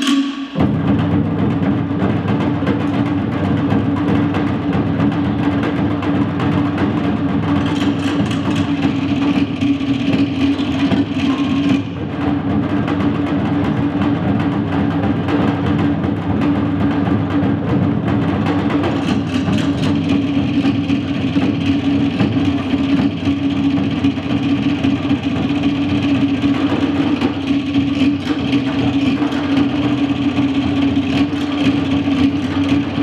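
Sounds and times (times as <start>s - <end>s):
fast rapid drumming: 0.0s - 33.0s.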